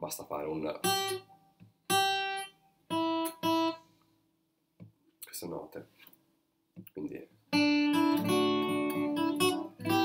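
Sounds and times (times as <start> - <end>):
acoustic guitar single notes: 7.5 - 10.0.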